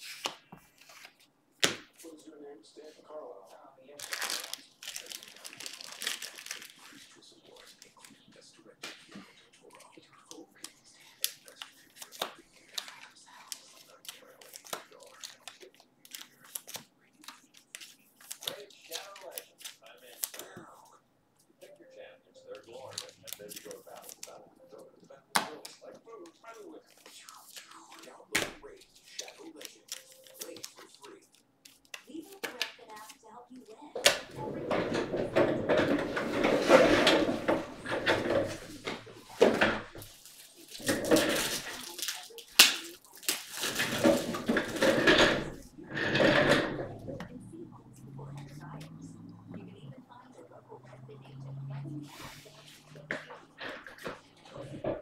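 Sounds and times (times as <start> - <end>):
faint handling noises: 0.0 - 55.0.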